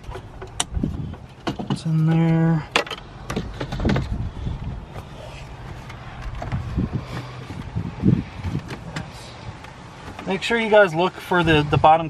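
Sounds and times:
plastic trim clicking and knocking: 2.7 - 4.2.

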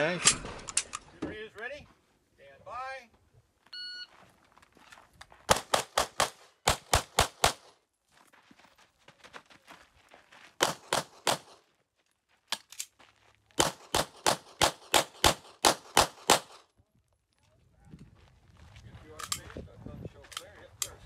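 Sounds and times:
gun handling clicks: 0.2 - 1.1, 12.5 - 12.9
pistol shots: 5.5 - 7.8, 10.6 - 11.6, 13.6 - 16.6.

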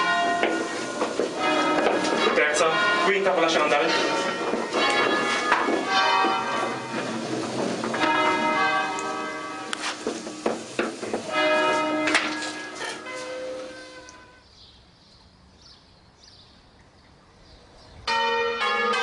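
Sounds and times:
church bells ringing: 0.0 - 14.4, 18.0 - 19.0.

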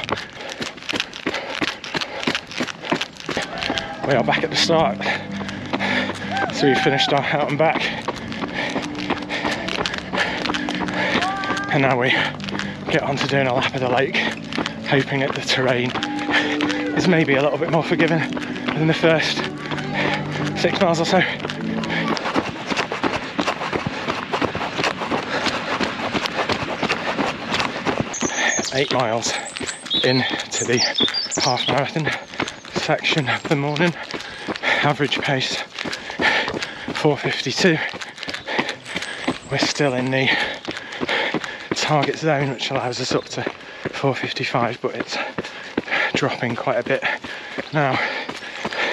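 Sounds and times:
running footsteps on wet gravel: 0.0 - 48.9.

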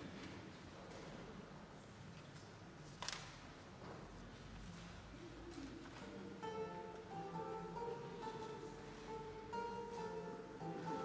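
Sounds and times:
lute plucked notes: 6.0 - 11.0.

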